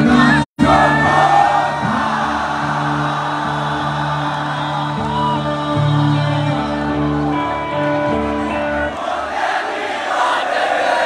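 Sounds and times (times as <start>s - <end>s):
live rock band playing: 0.0s - 8.9s.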